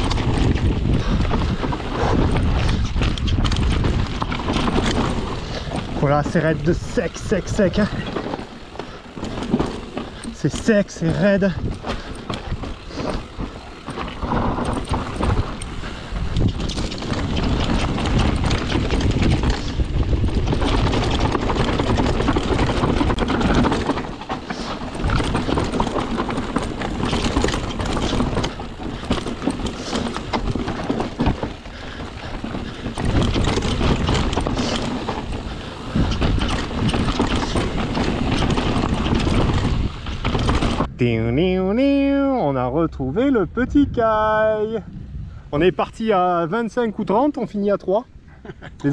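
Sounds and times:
bike rattling knocks: 0.0s - 40.9s
tyres clattering over rocks: 0.0s - 40.9s
low rumble: 42.6s - 46.0s.

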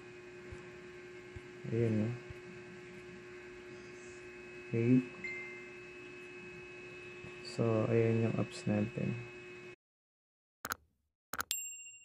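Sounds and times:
electrical mains hum: 0.0s - 9.8s.

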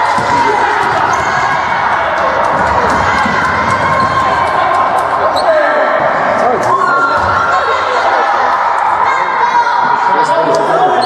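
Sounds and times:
basketball bouncing: 0.0s - 5.0s
crowd shouting in echoing hall: 0.0s - 11.0s.

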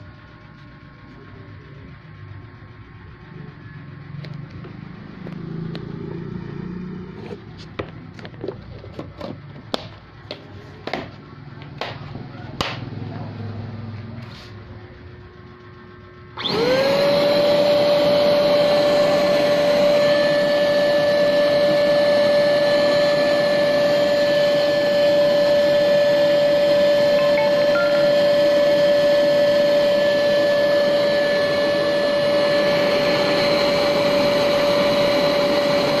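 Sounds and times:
vacuum motor whining: 16.4s - 36.0s.

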